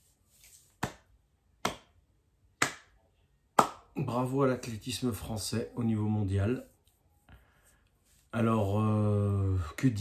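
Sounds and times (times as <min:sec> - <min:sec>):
slow hand claps: 0:00.8 - 0:02.0, 0:02.6 - 0:03.0, 0:03.6 - 0:03.9.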